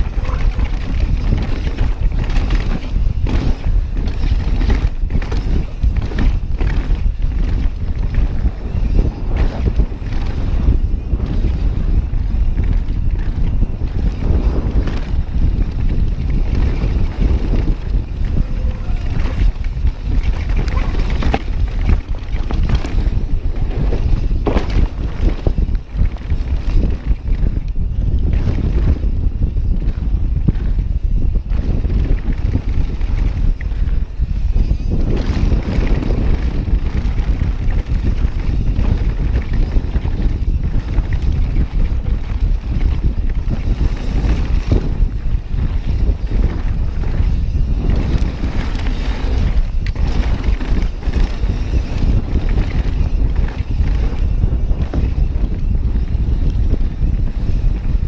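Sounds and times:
tyres rumbling over dirt: 0.0s - 27.6s, 31.5s - 56.2s
bike rattling on rough ground: 0.0s - 58.0s
wind buffeting microphone: 0.0s - 58.0s.

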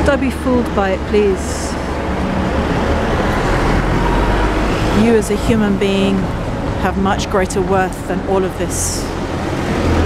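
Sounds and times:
engine rumble of passing vehicles: 0.0s - 10.0s
road noise: 0.0s - 10.0s.

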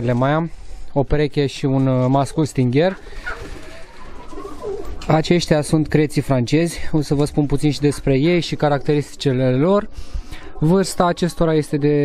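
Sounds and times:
pigeons cooing: 2.9s - 5.4s.

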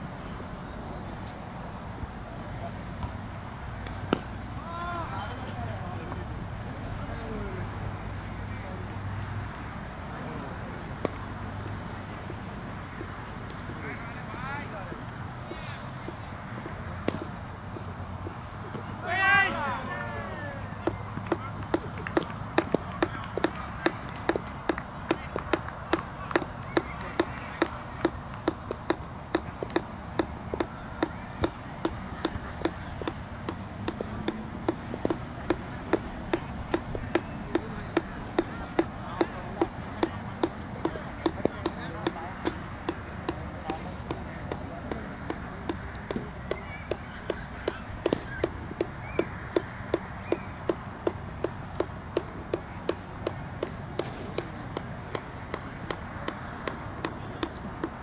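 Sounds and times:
faint distant voices: 0.0s - 58.0s.

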